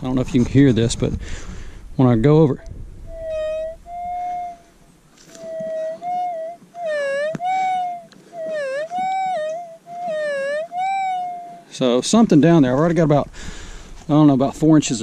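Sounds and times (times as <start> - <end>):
metal detector wavering tone: 3.1 - 4.7, 5.4 - 11.7.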